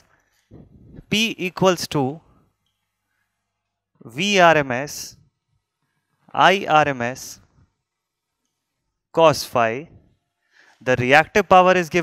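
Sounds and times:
man speaking: 1.0s - 2.3s, 4.0s - 5.2s, 6.3s - 7.5s, 9.1s - 10.0s, 10.8s - 12.0s.

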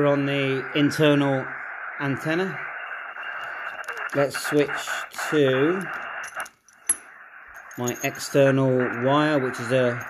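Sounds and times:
shortwave receiver hiss: 0.0s - 10.0s.

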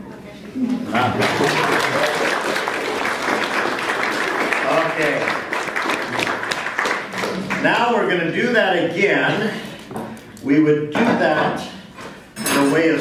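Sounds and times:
audience applauding: 1.0s - 7.9s.

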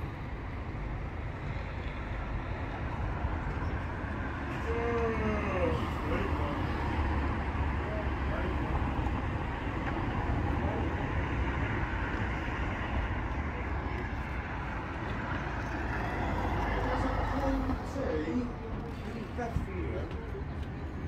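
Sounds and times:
low city rumble: 0.0s - 21.0s
faint voices: 13.0s - 21.0s.

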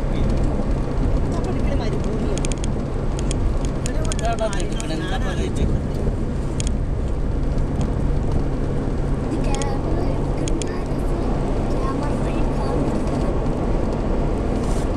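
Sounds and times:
car road and engine noise: 0.0s - 14.9s.

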